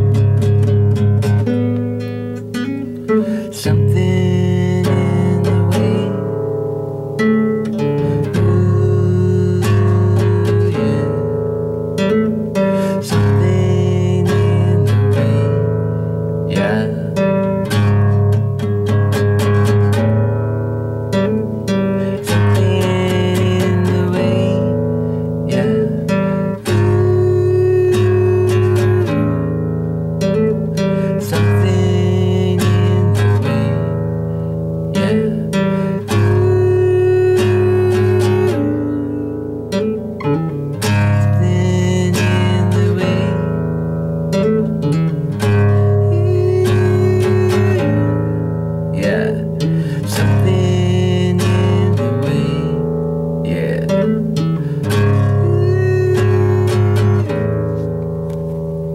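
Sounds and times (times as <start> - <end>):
acoustic guitar strummed chords: 0.0 - 58.9.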